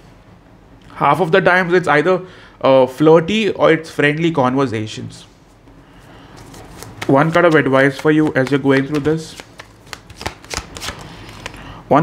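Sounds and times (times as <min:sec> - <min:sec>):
cards rustling: 0:06.2 - 0:11.7
cards snapping: 0:06.4 - 0:11.6.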